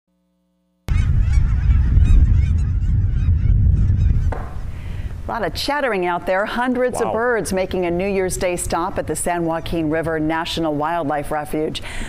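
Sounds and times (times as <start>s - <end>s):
steady low rumble: 0.9s - 9.8s.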